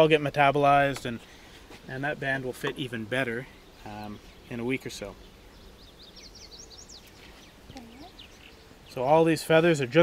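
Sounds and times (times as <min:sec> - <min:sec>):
small bird chirping: 0:03.5 - 0:09.2.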